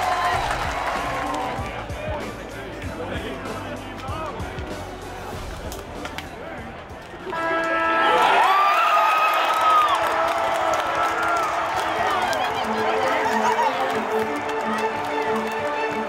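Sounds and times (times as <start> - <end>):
stadium crowd cheering: 0.0 - 4.5, 7.0 - 16.0
music with gliding melody: 10.0 - 16.0.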